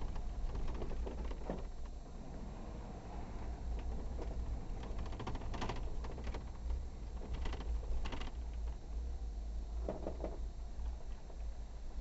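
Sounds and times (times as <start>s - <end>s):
rapid clicking and rattling: 0.0s - 2.0s, 3.7s - 8.9s
off-road vehicle rumble: 0.0s - 12.0s.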